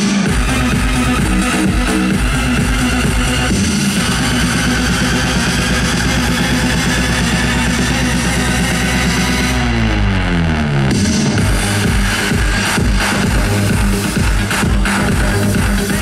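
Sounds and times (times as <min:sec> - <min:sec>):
loud electronic dance music: 0:00.0 - 0:16.0.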